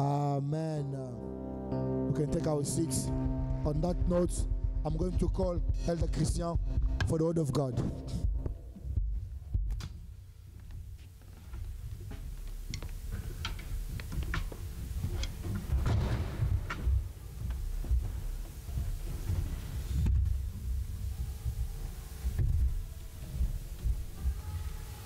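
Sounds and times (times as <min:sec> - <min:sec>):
microphone handling thuds: 0:11.5 - 0:24.3.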